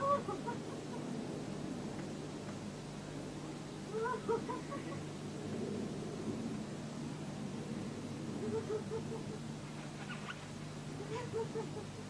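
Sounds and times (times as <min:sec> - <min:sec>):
steady background hiss and hum: 0:00.0 - 0:12.0.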